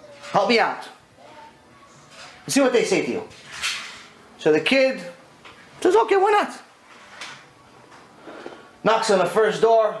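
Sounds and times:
man speaking: 5.8 - 6.7.

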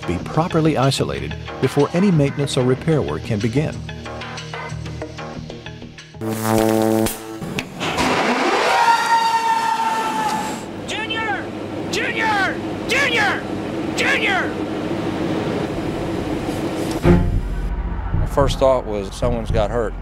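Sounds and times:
machine whine and hum: 6.2 - 20.0
man shouting: 8.7 - 14.6
held musical tone: 17.0 - 20.0.

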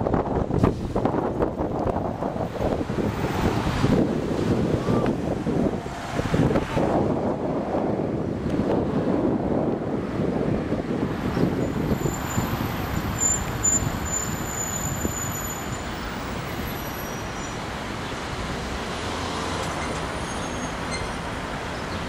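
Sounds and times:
vehicles driving past: 0.0 - 22.0.

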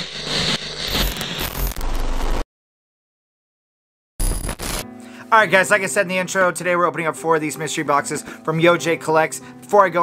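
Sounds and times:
digital static crackling: 0.0 - 2.4, 4.2 - 4.9.

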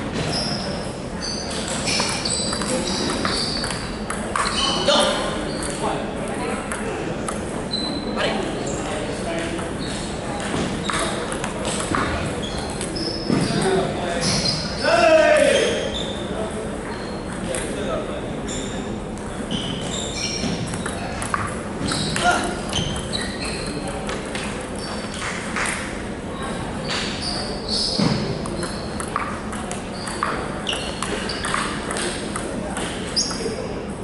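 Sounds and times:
table tennis ball hits: 1.5 - 4.8, 10.4 - 12.2, 20.4 - 23.2, 25.1 - 26.0, 28.0 - 33.5
table tennis ball clicking: 1.6 - 4.6, 20.7 - 21.5, 28.4 - 30.4.

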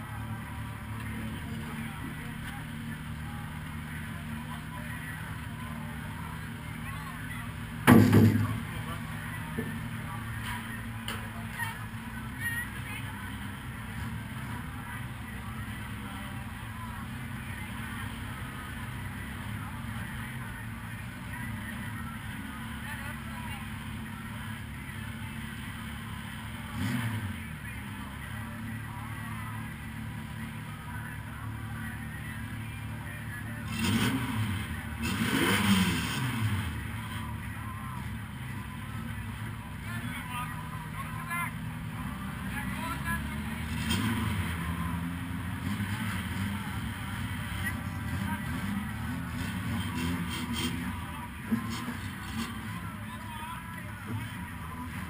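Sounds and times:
car engine idling and revving: 0.0 - 55.0.

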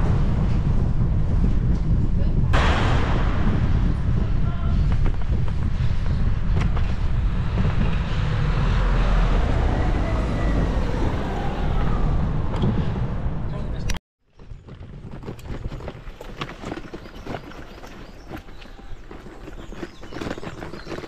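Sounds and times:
wind rumble: 0.0 - 21.0
bicycle rolling noise: 4.4 - 11.9, 14.3 - 21.0
car traffic passing close: 6.9 - 13.9.

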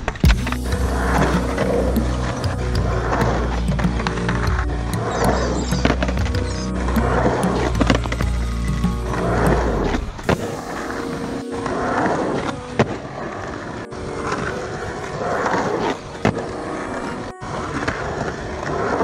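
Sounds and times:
skateboard wheels rolling on concrete: 0.0 - 19.0
background music with heavy bass: 0.2 - 13.0.

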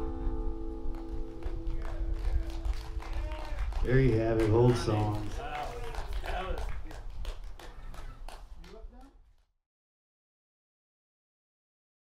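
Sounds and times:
audience clapping: 0.9 - 9.5.

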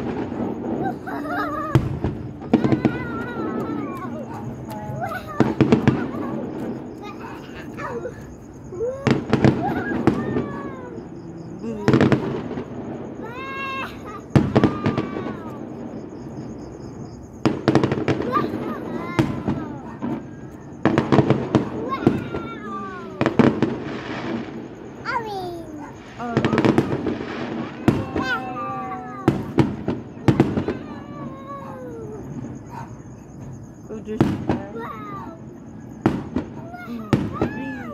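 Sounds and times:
fireworks bangs: 0.0 - 37.9
people talking and exclaiming: 0.0 - 37.9.

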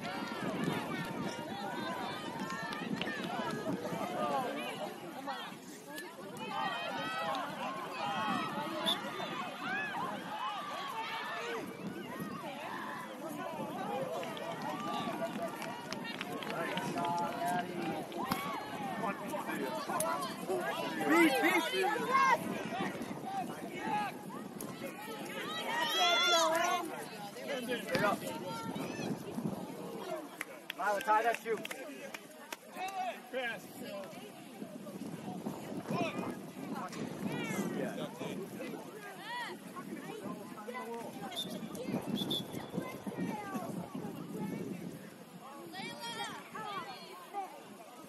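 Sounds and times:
voices calling and shouting: 0.0 - 48.0.

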